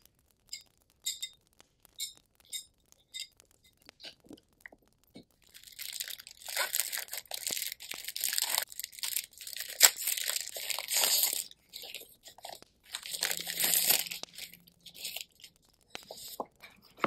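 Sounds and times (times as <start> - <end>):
plastic packet crinkling: 0.0 - 17.0.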